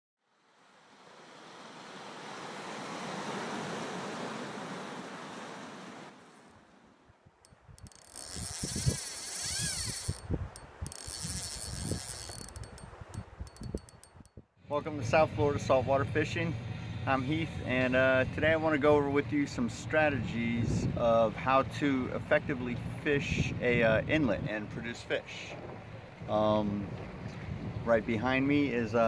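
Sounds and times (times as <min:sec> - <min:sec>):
rushing water swell: 0:00.3 - 0:07.0
wind buffeting microphone: 0:07.5 - 0:14.3, 0:19.6 - 0:21.4, 0:22.8 - 0:24.9, 0:25.5 - 0:28.7.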